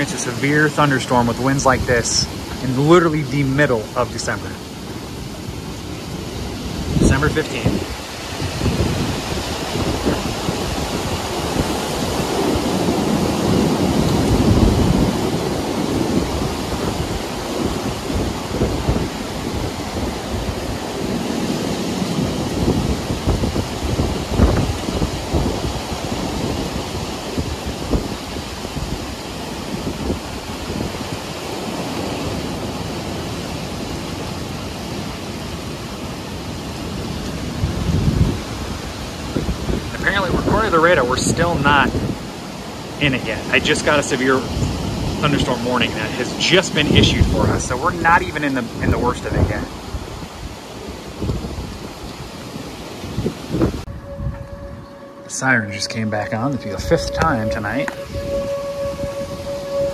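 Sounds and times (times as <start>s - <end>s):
gusting wind on microphone: 0.0s - 59.9s
heavy rain: 0.0s - 59.9s.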